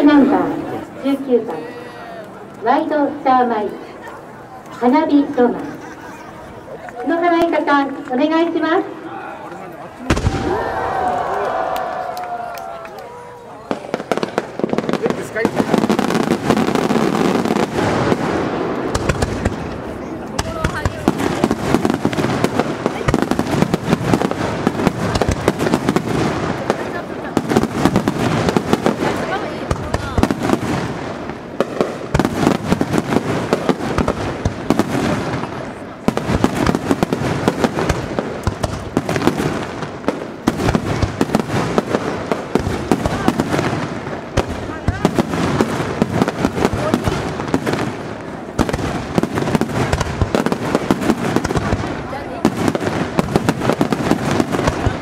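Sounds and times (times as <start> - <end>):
fireworks bursts and launches: 10.0 - 11.6, 13.6 - 55.0.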